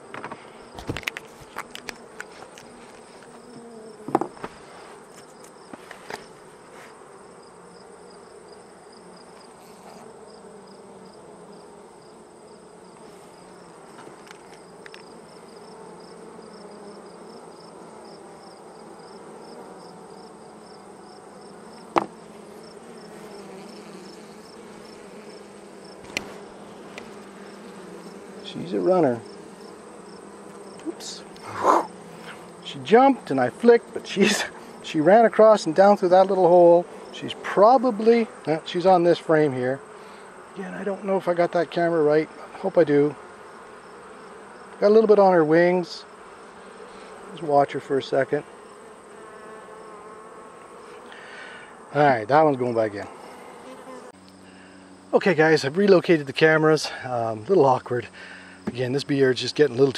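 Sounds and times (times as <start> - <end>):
bees buzzing: 0.0 - 59.9.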